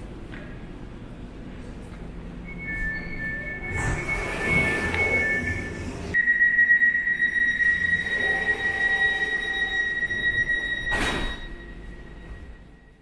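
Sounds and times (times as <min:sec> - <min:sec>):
steady high-pitched tone: 0:02.4 - 0:13.0.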